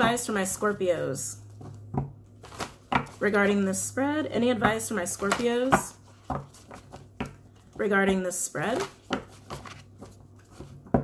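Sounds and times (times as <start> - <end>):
cards being shuffled: 2.4 - 3.6, 5.0 - 7.7, 8.6 - 10.8.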